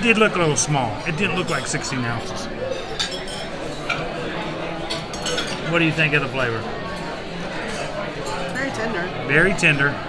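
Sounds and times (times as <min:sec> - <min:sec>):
murmur of voices: 0:00.0 - 0:10.0
cutlery clinking on plates: 0:01.1 - 0:02.0, 0:02.6 - 0:08.6.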